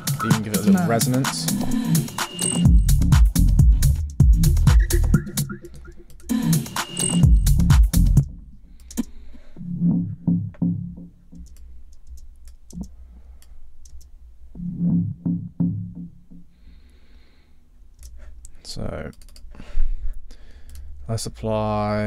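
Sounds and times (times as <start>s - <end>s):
computer mouse clicks: 8.8s - 9.2s, 11.4s - 14.1s.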